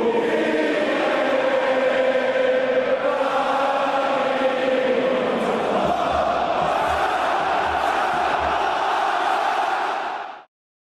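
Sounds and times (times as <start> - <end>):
voices singing a chant: 0.0 - 10.5.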